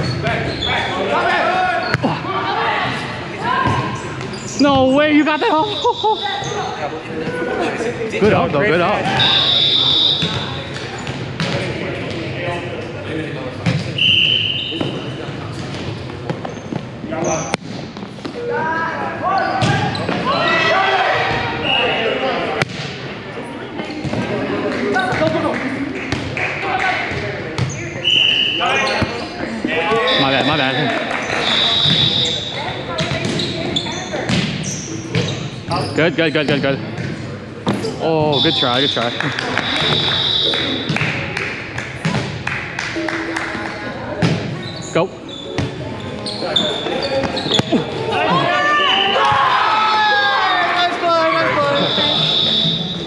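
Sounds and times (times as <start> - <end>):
sneaker squeaks on hardwood floor: 0.0 - 1.0, 3.6 - 5.0, 9.0 - 12.2, 13.7 - 17.6, 27.6 - 30.6, 31.2 - 37.2, 44.2 - 49.1
players' voices: 0.0 - 42.3, 42.9 - 53.0
volleyball hits and thumps: 10.2 - 12.2, 22.6 - 23.0, 34.2 - 35.3, 41.9 - 42.5.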